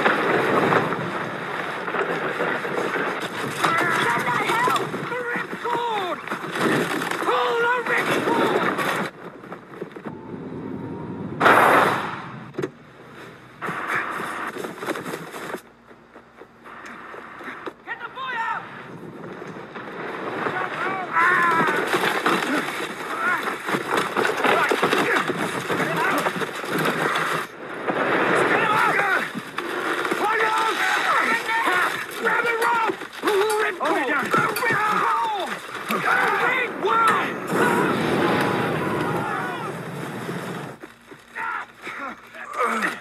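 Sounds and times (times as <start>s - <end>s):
raised voices calling out: 28.4s - 29.4s, 30.2s - 39.8s
men shouting: 30.2s - 39.8s.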